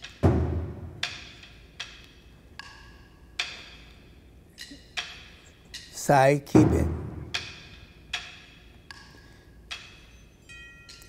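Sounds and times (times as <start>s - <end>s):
low thud: 0.2s - 1.1s, 6.6s - 7.4s.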